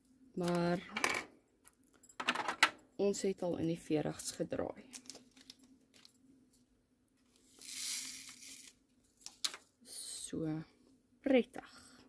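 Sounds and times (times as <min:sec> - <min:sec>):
plastic bags crinkling: 0:04.9 - 0:06.2.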